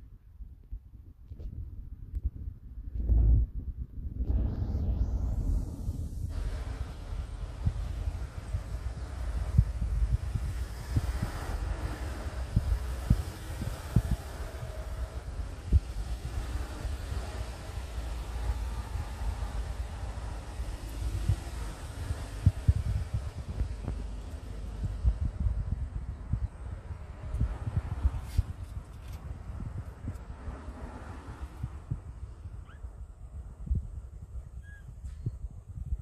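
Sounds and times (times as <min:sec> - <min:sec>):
low wind rumble: 0:00.0 - 0:36.0
microphone handling noise: 0:00.4 - 0:06.8, 0:20.9 - 0:30.5.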